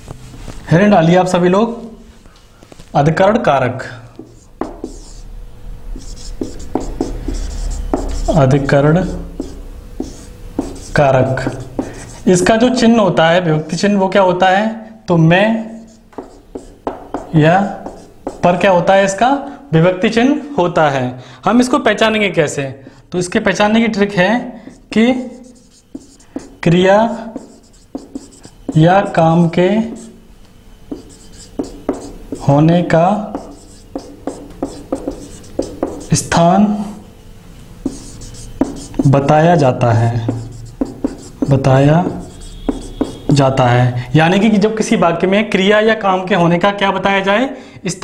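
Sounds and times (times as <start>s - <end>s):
marker tip tapping board: 4.2s - 5.2s, 6.0s - 8.3s, 9.4s - 12.0s, 16.1s - 18.5s, 25.5s - 26.6s, 27.4s - 29.2s, 30.9s - 32.5s, 33.3s - 36.2s, 37.8s - 39.1s, 40.2s - 43.4s
marker scratching on whiteboard: 4.2s - 5.3s, 5.9s - 12.7s, 15.6s - 18.8s, 24.6s - 30.2s, 30.9s - 37.0s, 37.8s - 43.5s.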